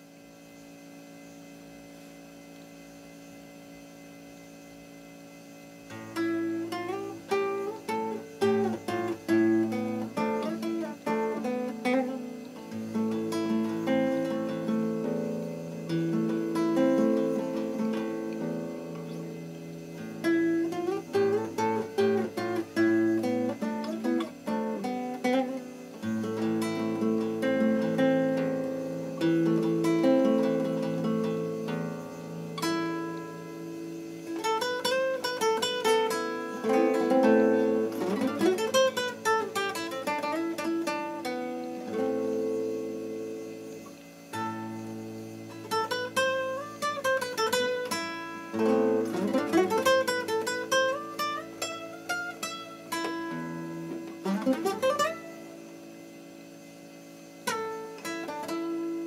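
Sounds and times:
classical guitar fingerstyle: 0:05.7 - 0:59.0.

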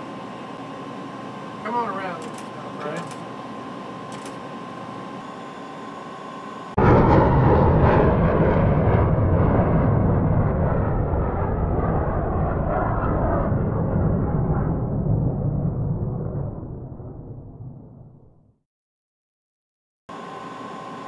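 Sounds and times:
jet airliner cabin noise: 0:00.0 - 0:07.6
cockpit hum with held tone: 0:00.0 - 0:18.4, 0:20.1 - 0:21.0.

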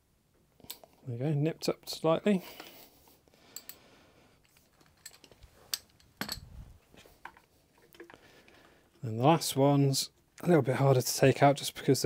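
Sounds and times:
hand tools clicking and knocking: 0:04.4 - 0:06.5.

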